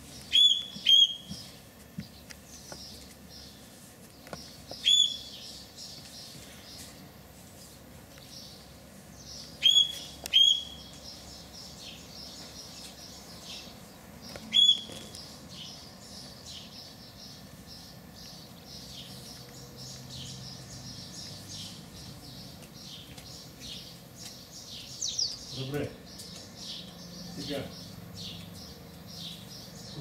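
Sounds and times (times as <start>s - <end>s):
faint twittering of birds: 0.0s - 30.0s
loud short bird chirps: 0.3s - 1.3s, 4.8s - 5.5s, 9.6s - 10.9s, 14.5s - 15.2s.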